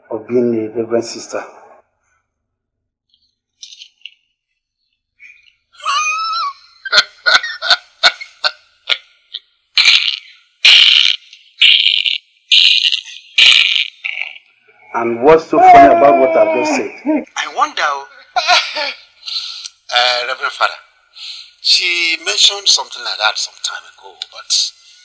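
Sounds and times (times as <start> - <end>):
man laughing: 5.8 - 9.0, 16.5 - 17.4, 18.4 - 19.4.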